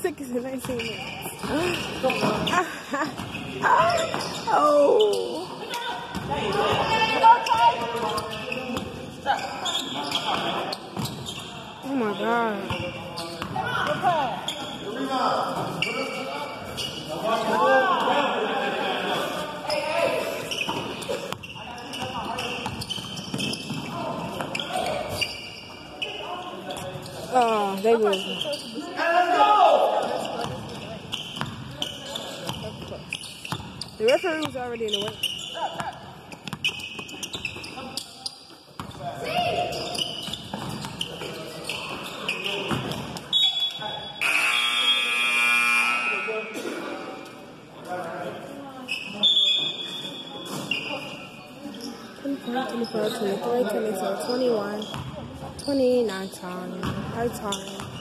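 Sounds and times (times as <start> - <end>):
players and spectators shouting: 28.8 - 30.3
scoreboard buzzer: 44.2 - 46.6.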